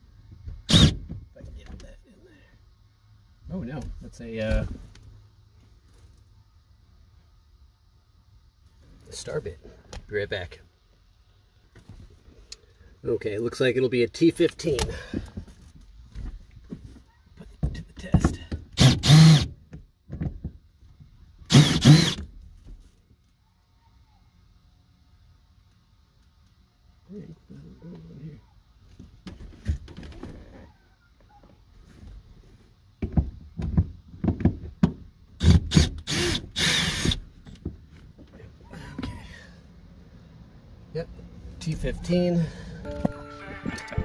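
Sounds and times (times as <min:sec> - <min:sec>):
cordless drill bursts: 0:00.7 - 0:01.0, 0:18.8 - 0:19.5, 0:21.5 - 0:22.2, 0:35.4 - 0:37.2.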